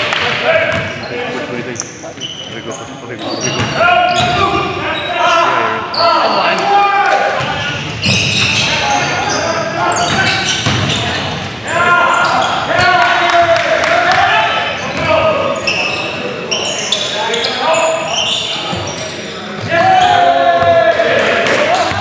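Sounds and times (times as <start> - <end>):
players' voices: 0.0 - 22.0.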